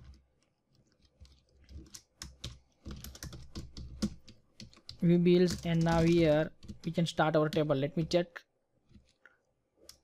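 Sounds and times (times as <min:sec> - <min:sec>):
faint computer keyboard typing: 0:00.0 - 0:07.8.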